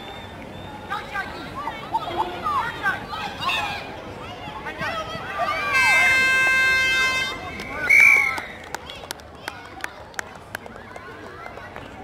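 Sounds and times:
referee's whistle blast: 0:07.8 - 0:08.4.

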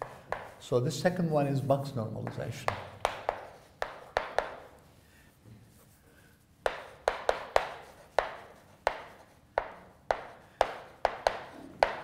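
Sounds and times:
chalk clicking on blackboard: 0:00.0 - 0:00.7, 0:02.2 - 0:04.9, 0:06.6 - 0:12.0.

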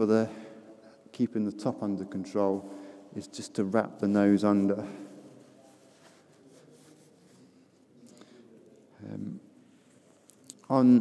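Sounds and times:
reverberant hall room tone: 0:00.0 - 0:11.0.

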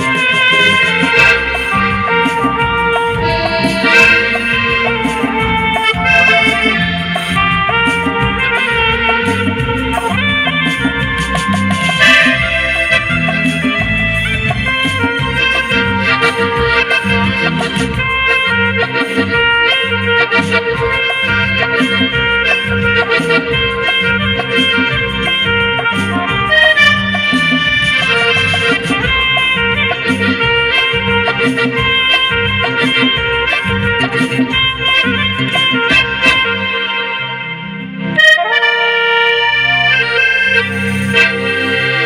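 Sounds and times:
hand drums: 0:00.0 - 0:36.5
steady beat: 0:00.0 - 0:36.7
bass line: 0:00.0 - 0:42.0
electronic keyboard: 0:00.0 - 0:42.0
live band playing film song: 0:00.0 - 0:42.0
saxophone lead: 0:00.0 - 0:42.0.

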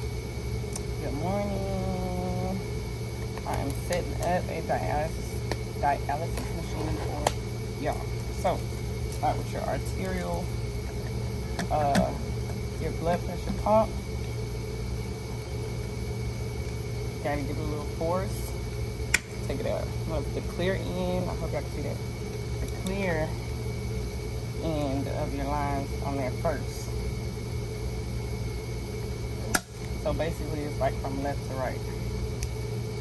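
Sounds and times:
faint high whine: 0:00.0 - 0:33.0
low mechanical hum: 0:00.0 - 0:33.0.

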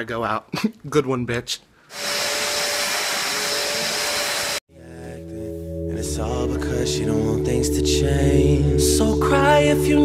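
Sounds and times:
vacuum cleaner on carpet: 0:02.0 - 0:04.6.

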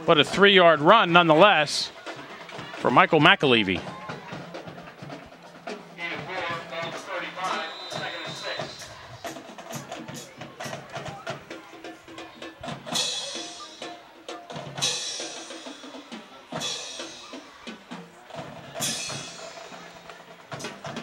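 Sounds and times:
quick drum beats: 0:00.0 - 0:21.0.

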